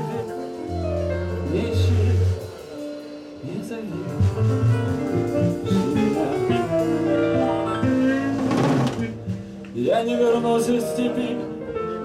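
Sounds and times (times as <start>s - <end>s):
singer's voice: 0.0s - 4.6s, 5.5s - 12.0s
live rock band music: 0.0s - 12.0s.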